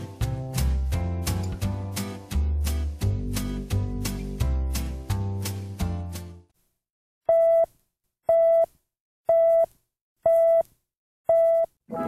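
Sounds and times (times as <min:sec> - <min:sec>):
music: 0:00.0 - 0:06.5.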